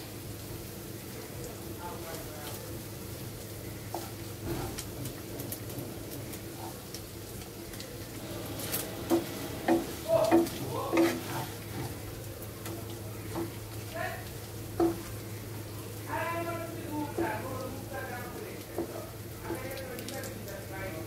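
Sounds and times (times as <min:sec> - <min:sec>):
meat sizzling in a pan: 0:00.0 - 0:21.0
wooden spatula scraping and knocking: 0:03.9 - 0:06.9, 0:08.4 - 0:12.0, 0:14.8 - 0:15.1, 0:18.7 - 0:19.7.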